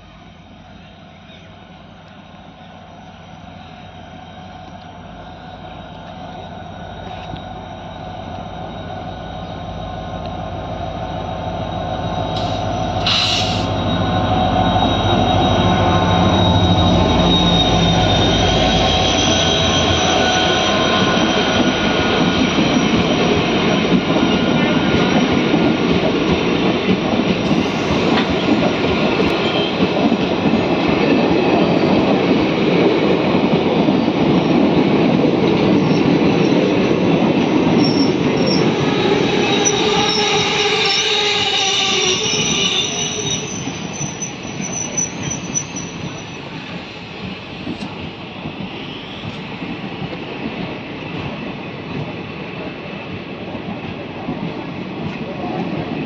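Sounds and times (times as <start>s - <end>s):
train wheels squealing: 0.0s - 53.3s
train coaches rolling past: 0.0s - 56.0s.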